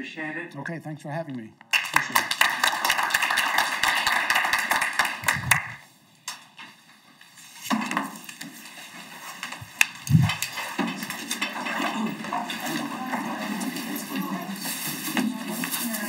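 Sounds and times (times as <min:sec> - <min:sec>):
audience applauding: 0:01.7 - 0:05.9
people moving about: 0:02.2 - 0:16.0.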